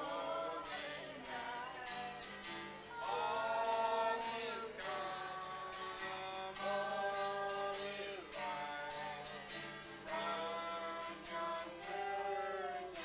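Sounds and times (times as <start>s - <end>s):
group of voices singing: 0.0s - 13.0s
strummed acoustic guitar: 0.0s - 13.0s.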